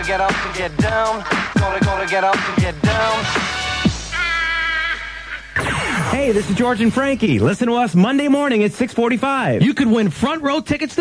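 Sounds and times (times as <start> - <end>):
hip-hop track held high note: 0.0 - 9.8
radio station promo: 0.0 - 11.0.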